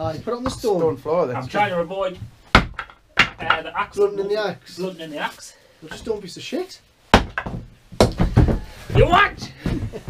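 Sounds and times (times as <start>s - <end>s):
hatchet chopping wood: 2.5s - 3.6s, 7.1s - 8.4s.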